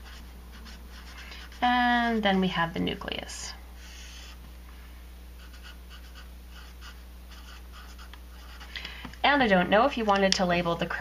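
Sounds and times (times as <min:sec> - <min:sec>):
marker scratching on paper: 0:00.0 - 0:01.7, 0:03.8 - 0:04.4, 0:05.4 - 0:08.7
steady low hum: 0:00.0 - 0:11.0.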